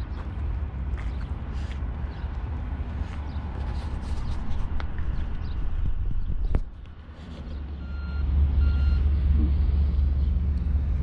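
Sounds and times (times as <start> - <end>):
wind buffeting microphone: 0.0 - 7.7
short electronic beeps: 7.8 - 9.1.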